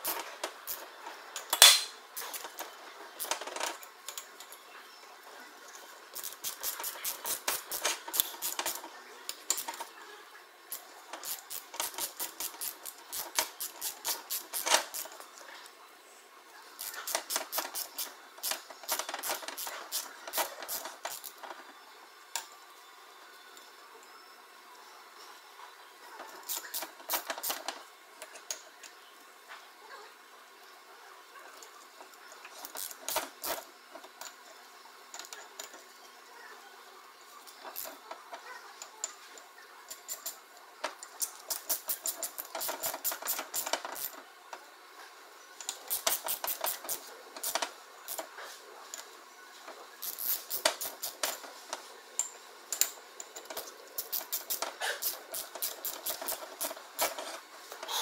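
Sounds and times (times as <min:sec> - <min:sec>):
hand ratchet clicking: 0:06.2 - 0:08.8, 0:10.7 - 0:15.2, 0:16.8 - 0:21.4, 0:39.9 - 0:40.4, 0:41.2 - 0:44.1, 0:45.9 - 0:48.2, 0:50.0 - 0:51.4, 0:52.2 - 0:57.2.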